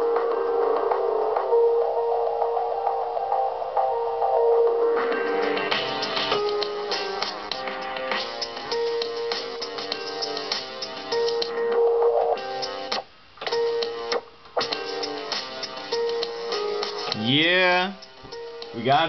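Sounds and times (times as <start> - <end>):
electronic beat with held notes: 0.0 - 19.0.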